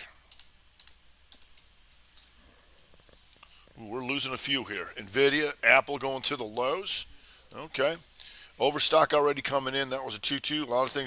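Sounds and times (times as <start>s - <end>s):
faint keystrokes on keyboard: 0.2s - 2.3s.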